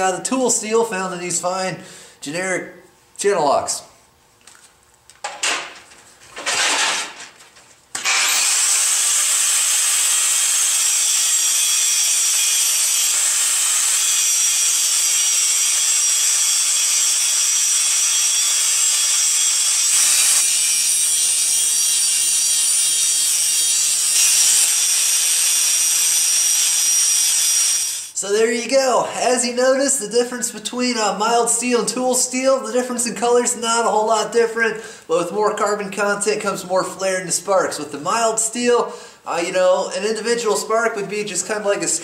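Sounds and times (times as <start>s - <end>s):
angle grinder grinding steel: 8.0s - 28.2s.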